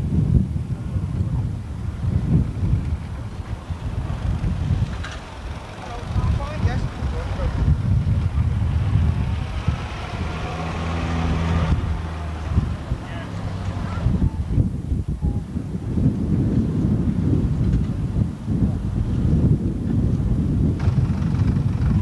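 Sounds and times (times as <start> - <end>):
wind rumbling on microphone: 0.0 - 22.0
background voices: 3.1 - 15.6
car engine driving past: 3.7 - 14.6.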